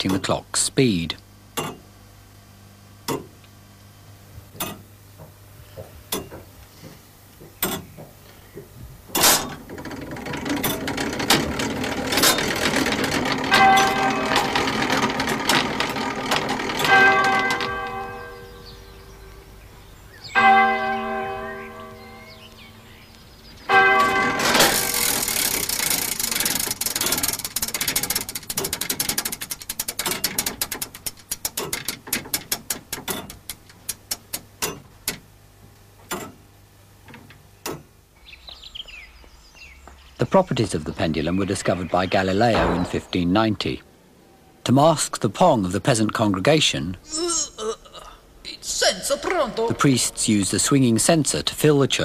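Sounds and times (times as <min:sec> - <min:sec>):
clock mechanism clicking: 0:04.6 - 0:04.8, 0:07.6 - 0:07.9, 0:09.1 - 0:18.6, 0:23.7 - 0:35.3
clock bell striking: 0:12.6 - 0:19.5, 0:20.3 - 0:22.9, 0:23.7 - 0:25.2.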